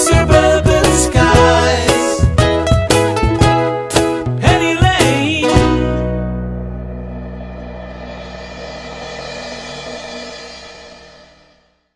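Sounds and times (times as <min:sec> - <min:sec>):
band final chord ringing: 0:05.9 - 0:11.6
cymbal: 0:06.8 - 0:11.9.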